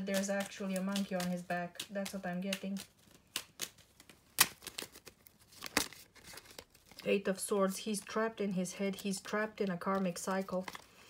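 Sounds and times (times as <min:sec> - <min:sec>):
playing cards being shuffled: 0:00.0 - 0:07.1.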